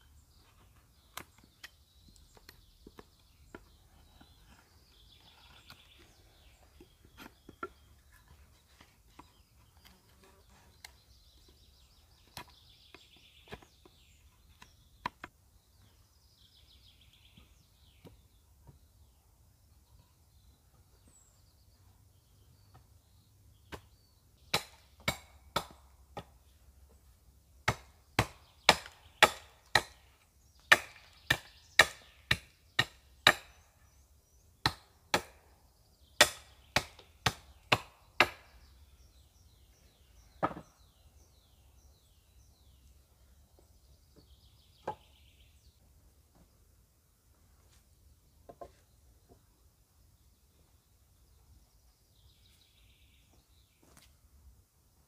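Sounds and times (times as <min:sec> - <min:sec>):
hand tool striking wood: 0:24.5 - 0:26.4, 0:27.6 - 0:30.0, 0:30.6 - 0:33.6, 0:34.6 - 0:35.4, 0:36.2 - 0:38.5, 0:40.4 - 0:40.8.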